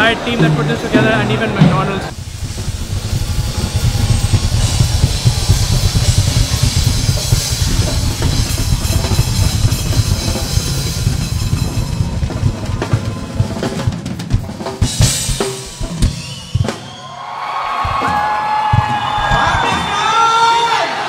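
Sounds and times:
cymbals: 0.0s - 17.2s
bass drum and tom strikes: 0.4s - 16.9s, 17.8s - 19.9s.

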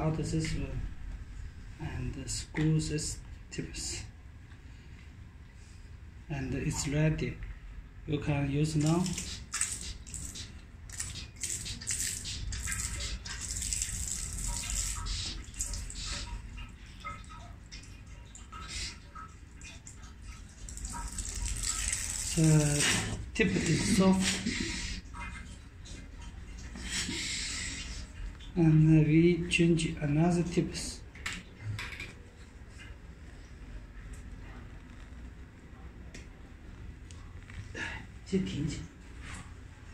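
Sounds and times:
water splashing into sink: 8.8s - 27.4s.

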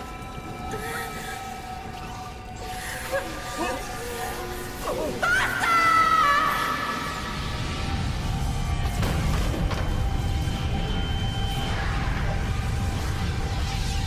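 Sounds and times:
sustained horror score tones: 0.0s - 14.0s.

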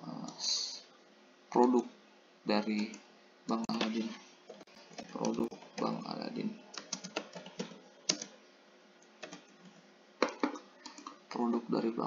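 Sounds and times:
computer keyboard typing: 2.8s - 8.4s, 9.0s - 11.2s.

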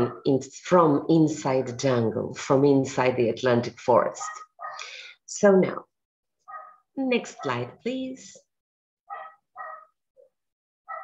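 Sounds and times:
dog barking: 4.2s - 4.8s, 6.5s - 6.8s, 9.1s - 10.0s.

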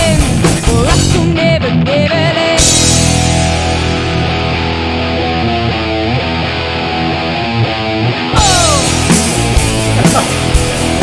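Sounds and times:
drums and cymbals: 0.0s - 1.3s, 2.6s - 3.9s, 8.4s - 11.0s
electric guitar and bass riff: 0.0s - 11.0s.

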